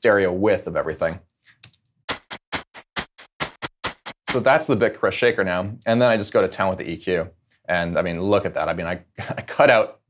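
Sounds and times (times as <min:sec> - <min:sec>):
bit-crushed shaker loop: 0:02.1 - 0:04.4.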